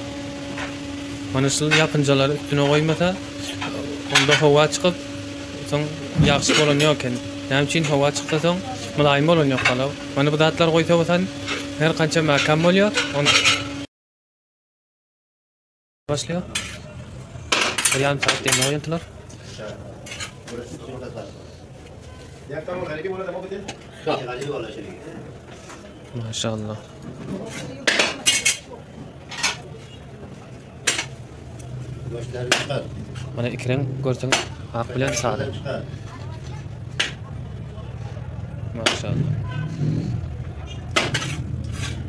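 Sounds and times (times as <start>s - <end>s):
metal skimmer scraping cooking pot: 1.6s - 9.9s, 11.3s - 13.8s, 40.7s - 42.0s.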